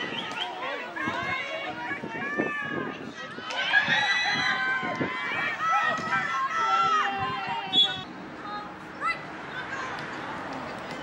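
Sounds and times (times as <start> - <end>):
people shouting and calling: 0.0 - 10.1.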